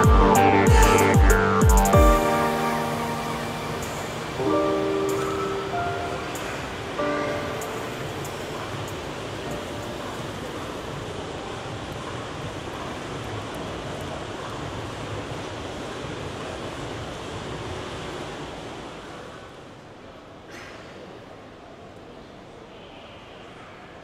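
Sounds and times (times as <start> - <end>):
music track: 0.0 - 10.8
airport terminal hall ambience: 0.0 - 24.0.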